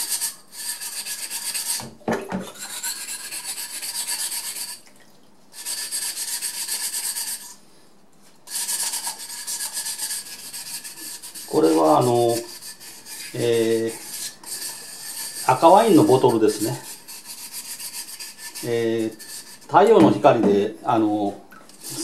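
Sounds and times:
sandpaper scrubbing glass: 0:00.0 - 0:01.8, 0:02.6 - 0:04.8, 0:05.6 - 0:07.4, 0:08.5 - 0:19.8.

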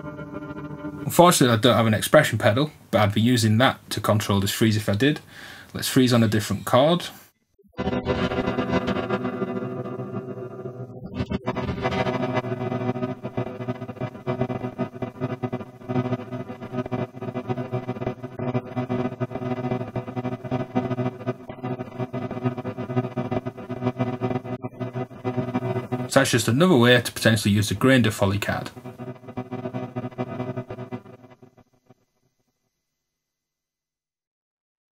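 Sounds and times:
sustained granular guitar chord: 0:00.0 - 0:01.2, 0:07.8 - 0:26.6, 0:28.6 - 0:31.4.

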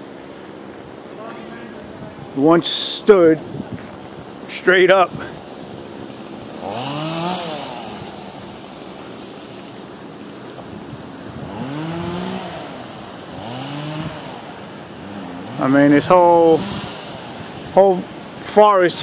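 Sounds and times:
chainsaw revving: 0:05.4 - 0:09.5, 0:11.4 - 0:18.5.

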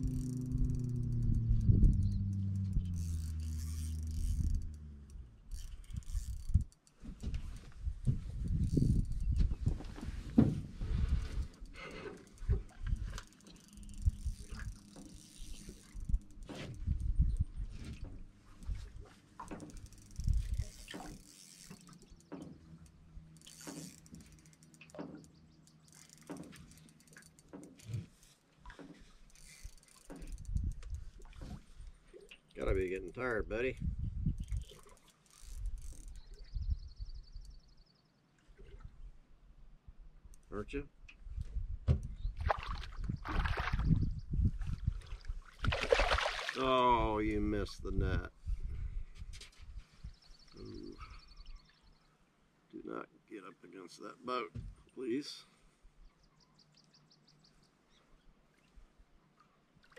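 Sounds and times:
low hum falling in pitch: 0:00.0 - 0:06.2
fishing reel clicking: 0:00.0 - 0:07.0, 0:08.5 - 0:09.3, 0:11.3 - 0:17.5, 0:19.5 - 0:27.9, 0:29.2 - 0:31.1, 0:34.4 - 0:36.5.

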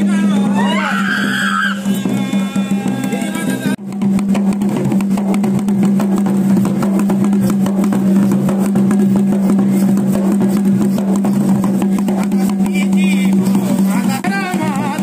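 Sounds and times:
rapid drumming: 0:00.0 - 0:15.0.

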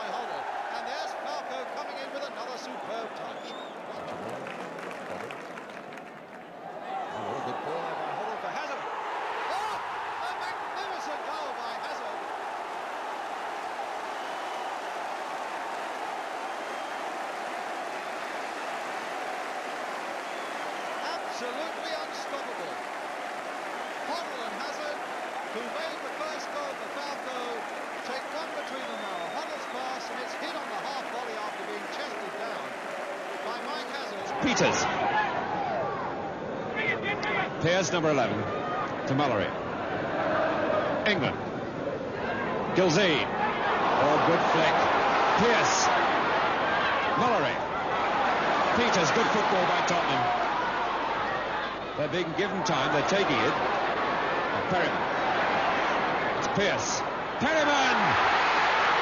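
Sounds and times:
stadium crowd cheering: 0:00.0 - 0:59.0
clapping: 0:04.1 - 0:06.5, 0:12.5 - 0:34.6.

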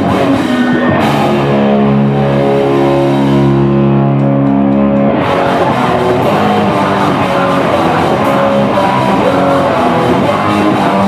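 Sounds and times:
live hardcore band: 0:00.0 - 0:11.0
ringing electric guitar chord: 0:00.0 - 0:11.0.

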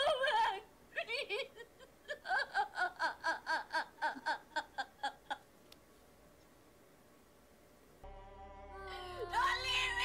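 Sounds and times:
soft soundtrack music: 0:08.0 - 0:10.0.

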